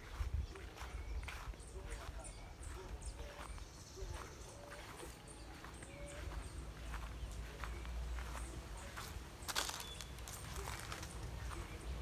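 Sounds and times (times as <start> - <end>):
footfalls on dirt and undergrowth: 0.0 - 12.0.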